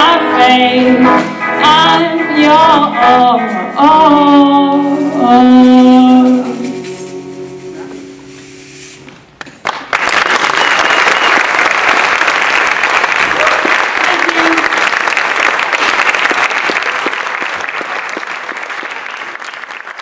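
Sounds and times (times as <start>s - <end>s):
audience applause: 9.4s - 20.0s.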